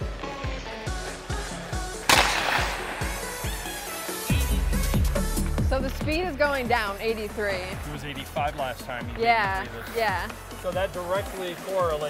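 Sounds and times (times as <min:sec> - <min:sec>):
background music with steady beat: 0:00.0 - 0:12.0
hockey stick slap shot crack: 0:02.0 - 0:03.9.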